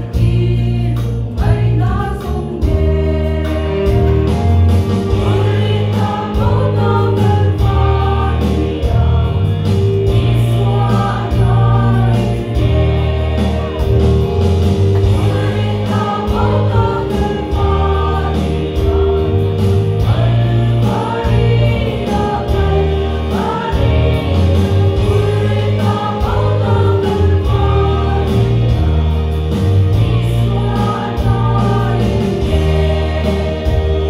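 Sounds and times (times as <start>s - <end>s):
accompaniment holding low notes: 0.0s - 34.0s
women singing a hymn: 0.0s - 34.0s.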